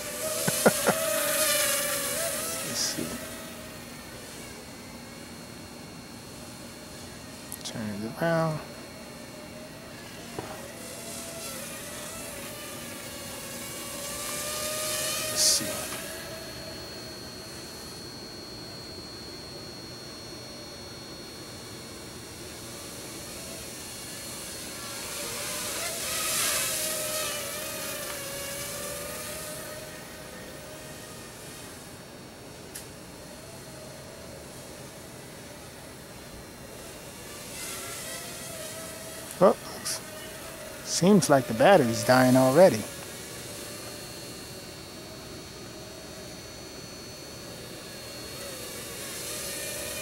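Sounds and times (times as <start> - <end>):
quadcopter motors whining: 0.0 - 50.0.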